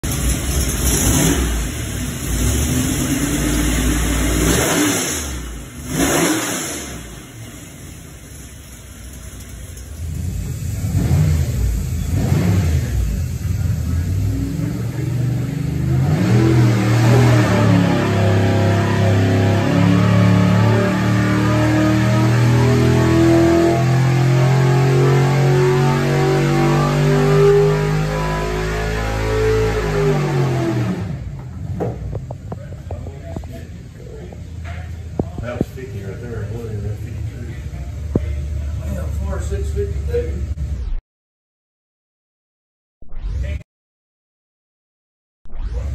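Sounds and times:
engine revving on dynamometer: 0.1s - 8.4s, 9.7s - 31.4s.

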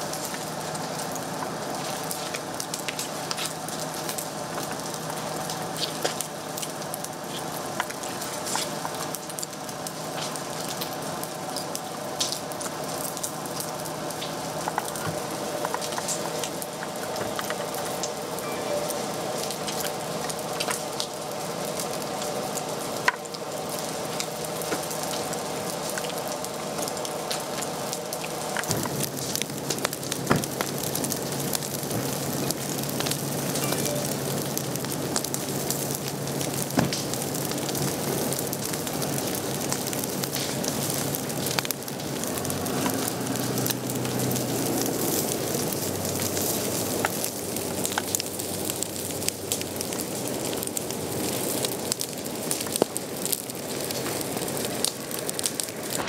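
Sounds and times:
fire hissing and crackling: 0.0s - 56.0s.

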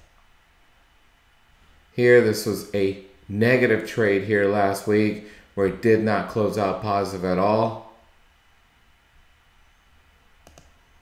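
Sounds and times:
computer mouse clicks: 0.0s - 0.2s, 10.4s - 10.8s.

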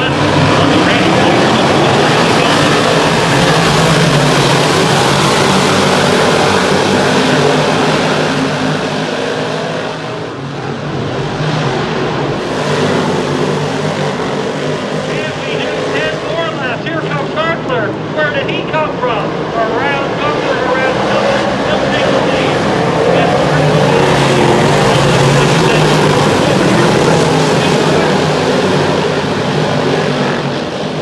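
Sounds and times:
race car engines roaring: 0.0s - 31.0s.

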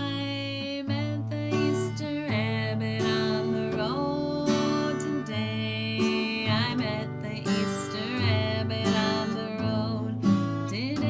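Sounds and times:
acoustic guitar strumming: 0.0s - 11.0s
woman singing: 0.0s - 11.0s.

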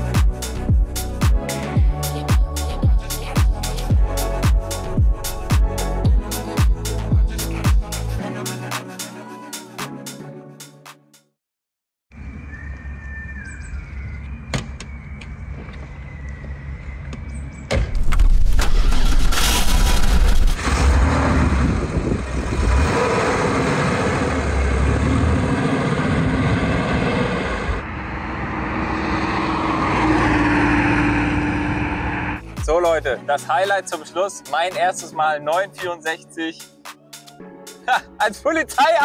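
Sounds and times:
wind and road noise: 12.1s - 32.4s.

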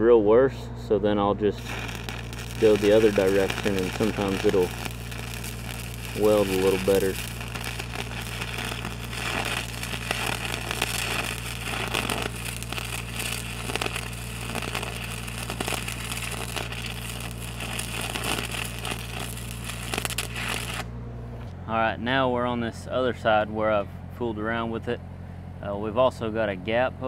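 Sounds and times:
welder engine humming: 0.0s - 21.5s
welding arc crackling: 1.4s - 20.9s.

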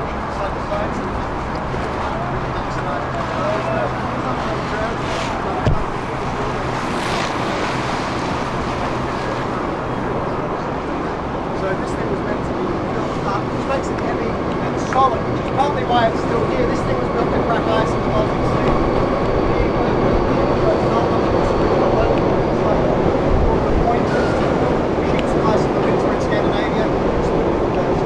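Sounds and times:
choppy water: 0.0s - 28.0s
ship engine hum: 0.0s - 28.0s
wind: 0.0s - 28.0s.

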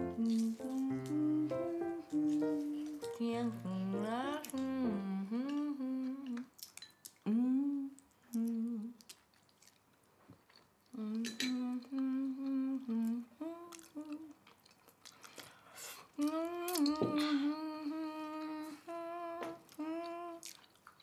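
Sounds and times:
person humming: 0.0s - 6.5s, 7.2s - 9.0s, 11.0s - 14.4s, 16.2s - 20.5s.

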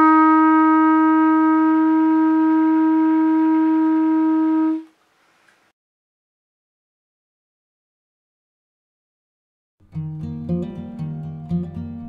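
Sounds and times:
clarinet sustaining a long note: 0.0s - 4.9s.

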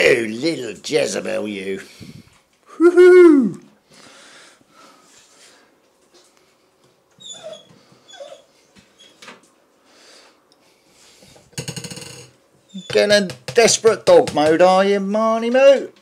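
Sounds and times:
dogs whining and snuffling: 7.2s - 9.4s, 12.6s - 13.2s.

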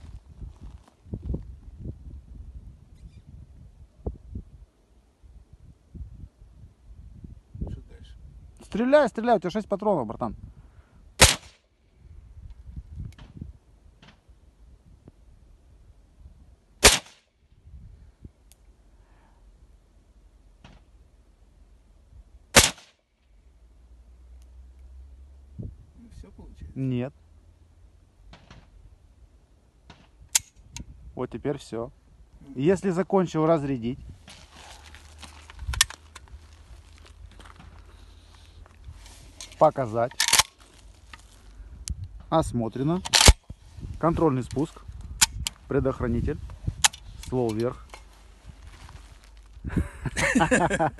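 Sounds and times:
gunshot crack: 11.2s - 11.6s, 16.8s - 17.2s, 22.5s - 23.0s
low steady rumble: 11.8s - 50.9s
rifle action clicking: 40.2s - 40.6s, 43.0s - 43.4s.

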